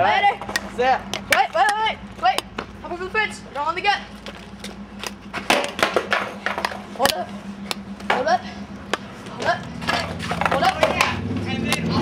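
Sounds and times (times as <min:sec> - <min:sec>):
skateboard rolling: 0:04.1 - 0:07.0, 0:09.0 - 0:12.0
skateboard clattering on pavement: 0:05.3 - 0:06.8.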